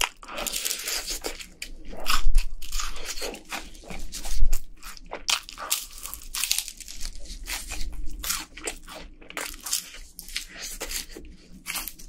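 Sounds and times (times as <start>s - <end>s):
crunchy chewing of fried chicken: 0.0s - 12.0s.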